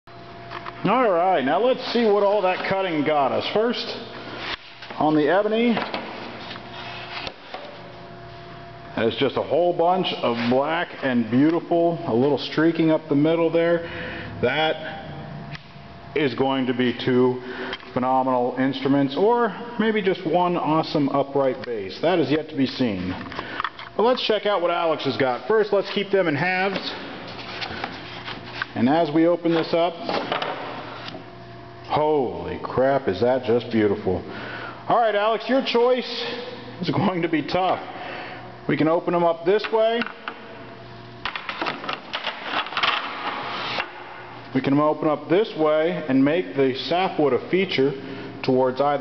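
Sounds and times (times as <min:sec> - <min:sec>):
faint steady hum: 0:00.1 - 0:49.0.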